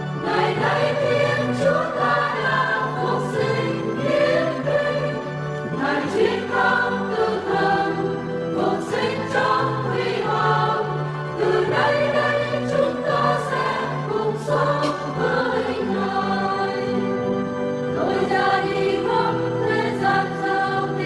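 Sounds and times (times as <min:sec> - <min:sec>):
choir singing a hymn: 0:00.0 - 0:21.0.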